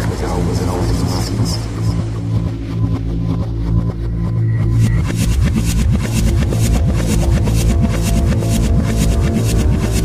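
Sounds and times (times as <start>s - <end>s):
deep bass line: 0.0s - 10.0s
fast hi-hat pattern: 4.7s - 10.0s.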